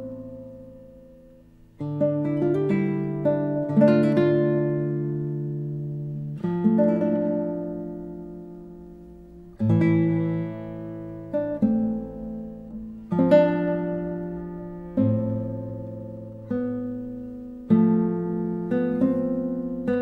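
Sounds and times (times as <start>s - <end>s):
classical guitar chords plucked: 0.0s - 20.0s.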